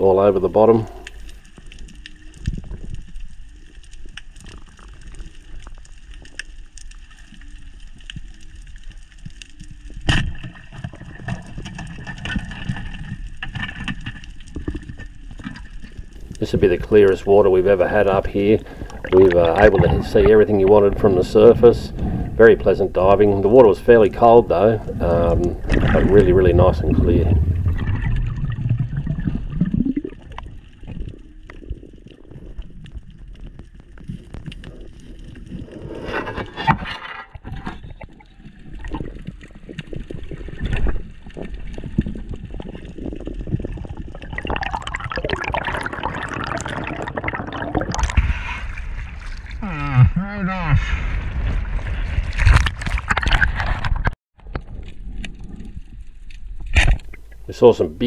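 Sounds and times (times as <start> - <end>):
underwater water rush and gurgling: 0.0 - 49.6, 50.8 - 58.0.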